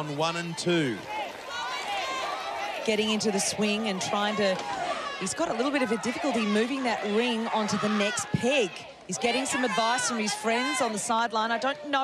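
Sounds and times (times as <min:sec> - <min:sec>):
spectators shouting and cheering: 0:00.0 - 0:12.0
commentator speaking: 0:05.2 - 0:12.0.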